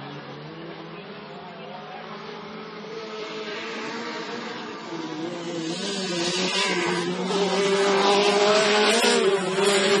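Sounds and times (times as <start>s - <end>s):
race car engine running: 2.0s - 10.0s.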